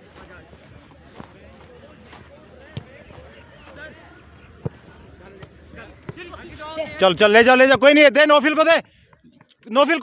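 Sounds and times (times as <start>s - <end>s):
soccer ball kicked: 0.2s - 3.8s, 4.6s - 6.4s.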